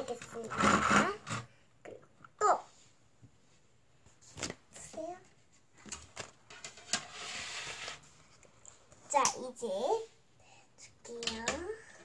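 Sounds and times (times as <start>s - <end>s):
baseplate rustling on table: 5.4s - 8.9s.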